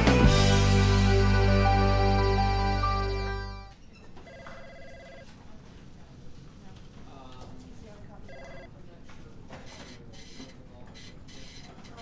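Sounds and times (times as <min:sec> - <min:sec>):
telephone ringing: 0:04.2 - 0:05.3, 0:08.3 - 0:08.7.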